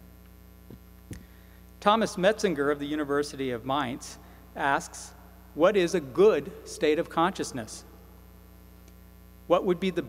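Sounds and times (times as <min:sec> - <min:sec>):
electrical mains hum: 0:00.0 - 0:10.0
man talking: 0:01.8 - 0:07.9, 0:09.5 - 0:10.0.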